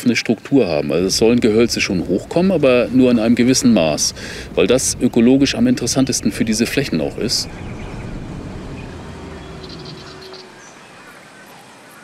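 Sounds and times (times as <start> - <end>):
truck engine and tyre rumble: 0.6 - 11.6.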